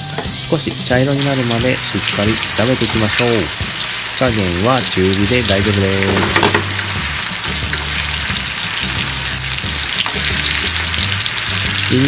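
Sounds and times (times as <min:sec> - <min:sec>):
apple slices sizzling in a frying pan: 0:00.0 - 0:12.0
chopsticks turning food in a pan: 0:00.0 - 0:12.0.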